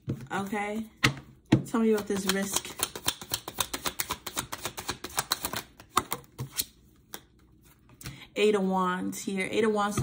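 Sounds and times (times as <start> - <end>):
cards being shuffled: 2.0 - 7.3.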